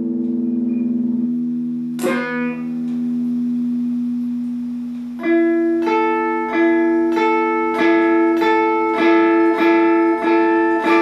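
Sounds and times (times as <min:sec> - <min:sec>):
sustained electric guitar note: 0:00.0 - 0:11.0.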